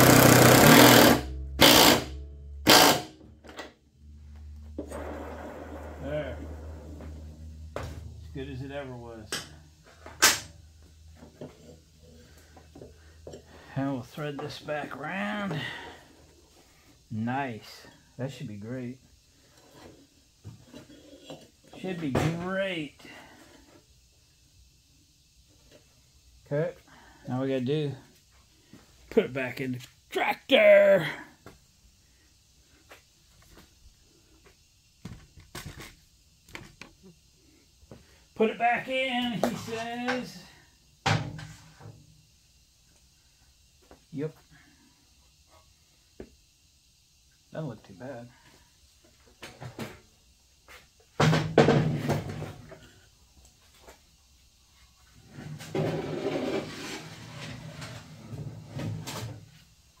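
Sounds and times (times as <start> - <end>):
metal mower deck scraping and rattling: 55.6 - 58.0.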